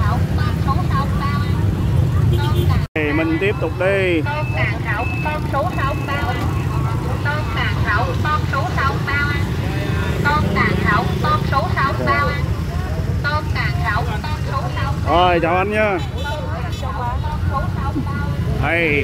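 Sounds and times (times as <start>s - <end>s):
motorbike engines droning: 0.0s - 19.0s
street traffic: 0.0s - 19.0s
voices talking and calling out: 0.0s - 19.0s.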